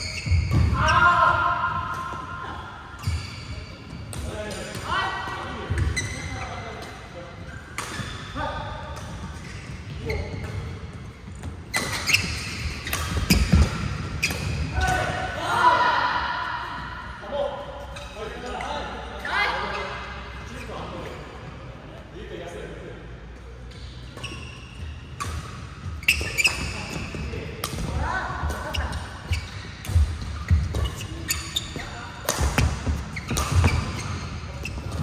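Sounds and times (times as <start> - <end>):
rackets striking shuttlecock: 32.2 - 34.2.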